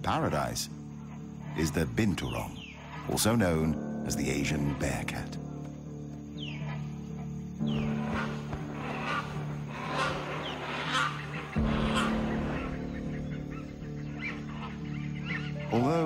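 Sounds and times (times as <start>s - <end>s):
background music with sustained tones: 0.0s - 16.0s
hornbills calling: 0.0s - 16.0s.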